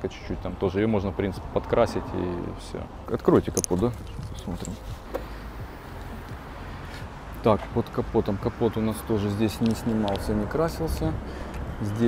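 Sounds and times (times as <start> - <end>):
low street noise rumble: 0.0 - 12.0.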